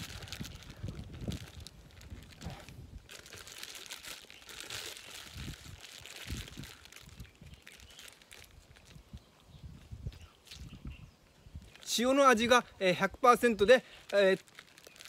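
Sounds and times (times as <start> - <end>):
wrapper crinkling: 0.0 - 9.3, 13.6 - 15.0.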